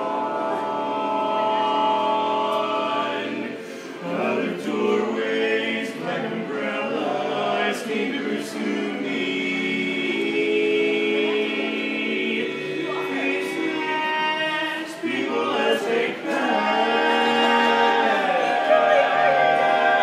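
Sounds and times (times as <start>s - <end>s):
men singing a cappella harmony: 0.0s - 20.0s.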